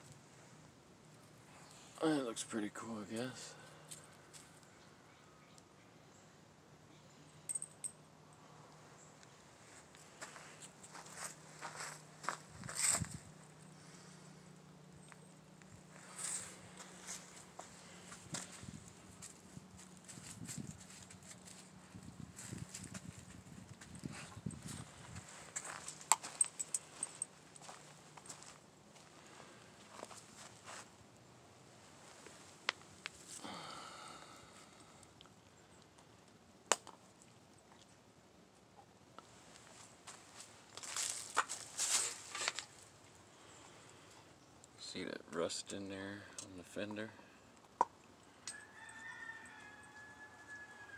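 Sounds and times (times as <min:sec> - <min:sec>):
faint footsteps: 0:09.6 - 0:13.6, 0:15.1 - 0:30.9.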